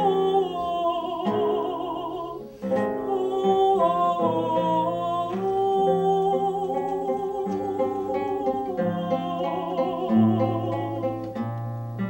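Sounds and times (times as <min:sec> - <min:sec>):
woman singing operatically: 0:00.0 - 0:11.4
plucked classical guitar: 0:00.0 - 0:12.0.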